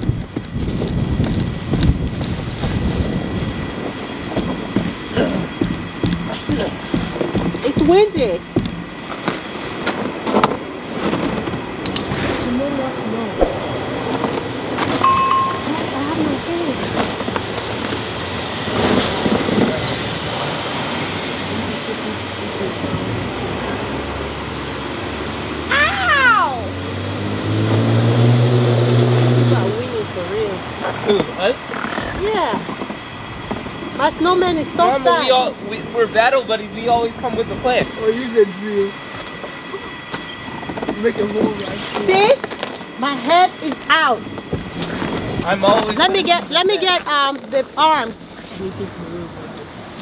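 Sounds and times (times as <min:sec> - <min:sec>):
wind noise on microphone: 0:00.0 - 0:21.8, 0:44.2 - 0:46.5
low hum: 0:11.7 - 0:31.7
children and adults talking: 0:11.9 - 0:18.3, 0:25.6 - 0:26.8, 0:29.5 - 0:33.2, 0:33.8 - 0:49.8
child's high squeal: 0:25.7 - 0:26.7.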